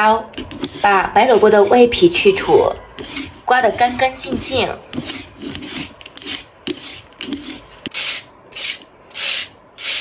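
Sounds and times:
vegetable peeler scraping radish: 0.4s - 10.0s
radish rasping on metal grater: 0.5s - 8.8s.

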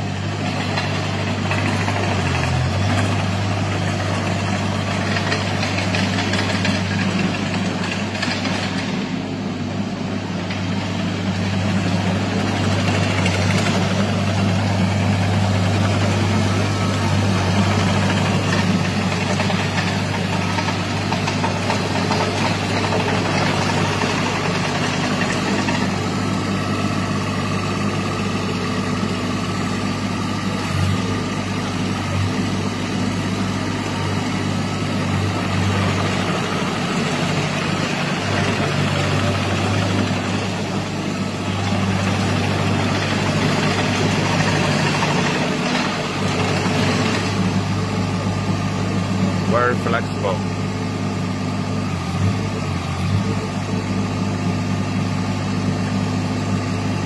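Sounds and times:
tracked loader droning: 0.0s - 57.0s.

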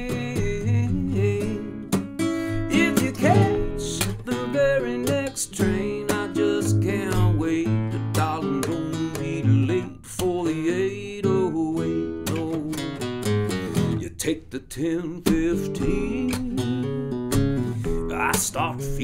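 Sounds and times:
acoustic guitar instrumental: 0.0s - 19.0s.

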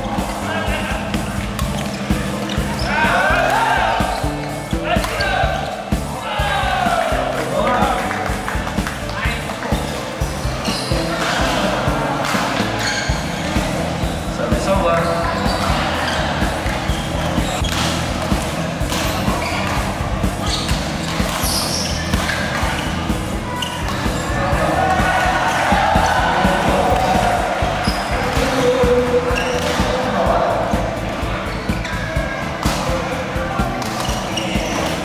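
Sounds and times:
background chatter: 0.0s - 35.0s
shoe squeaks: 1.6s - 3.2s, 9.7s - 11.4s, 12.4s - 18.0s, 18.9s - 24.4s, 27.8s - 28.2s, 29.3s - 30.0s, 33.8s - 35.0s.

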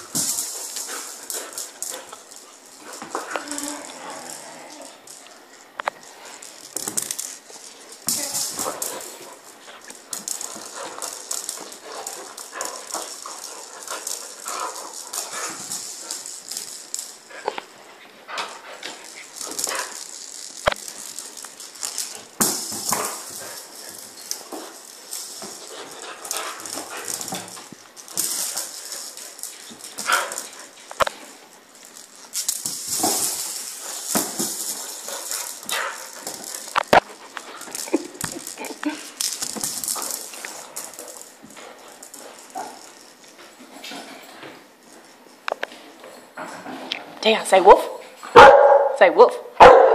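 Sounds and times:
ball rattling and knocking: 0.0s - 17.8s, 18.4s - 45.8s.

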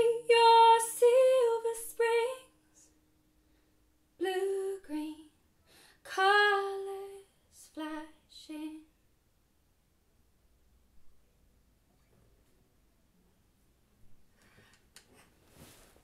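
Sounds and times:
woman singing: 0.0s - 2.9s, 4.2s - 5.4s, 6.0s - 9.0s.

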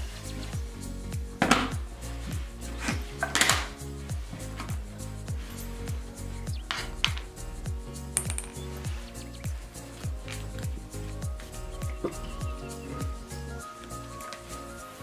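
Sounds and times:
background music with a beat: 0.0s - 15.0s
beads clicking in a wooden tray: 8.2s - 8.6s.

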